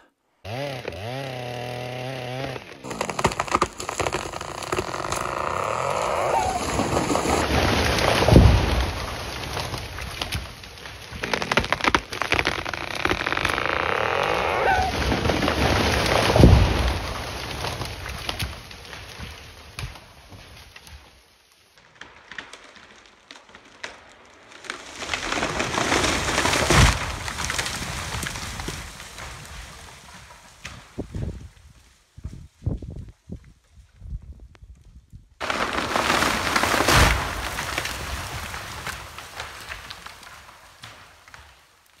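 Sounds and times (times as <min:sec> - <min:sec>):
tree crashing through branches: 0:00.5 - 0:32.4, 0:35.4 - 0:42.0
falling limbs knocking: 0:02.8 - 0:18.6
heavy thud of tree landing: 0:05.4 - 0:10.5.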